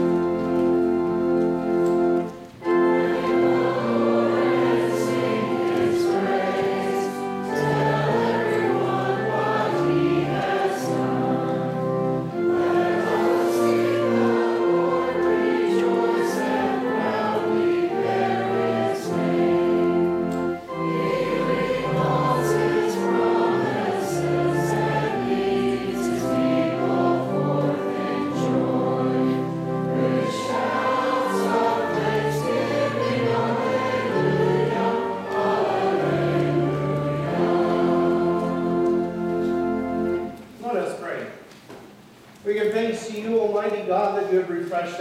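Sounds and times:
group singing a hymn: 0.0 - 40.4
organ chords: 0.0 - 42.2.

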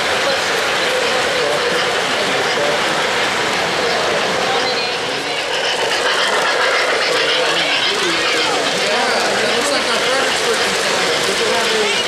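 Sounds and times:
model train wheels rattling on rail: 5.2 - 12.0.

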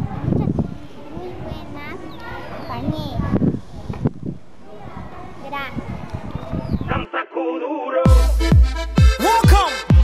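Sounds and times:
children chattering: 0.0 - 6.8.

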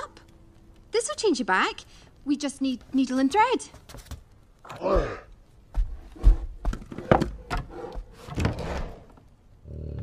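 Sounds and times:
low bear growl: 7.7 - 10.0.

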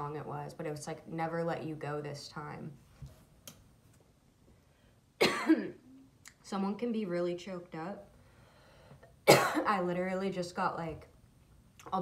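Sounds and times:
woman coughing: 5.2 - 5.9, 9.2 - 9.8.

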